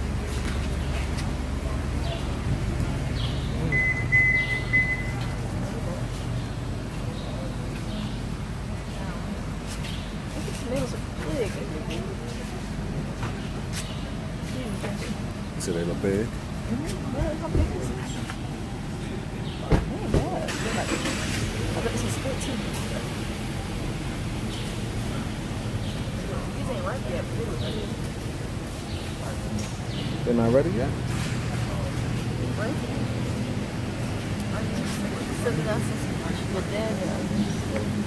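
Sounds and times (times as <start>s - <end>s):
low rumble of market ambience: 0.0s - 38.0s.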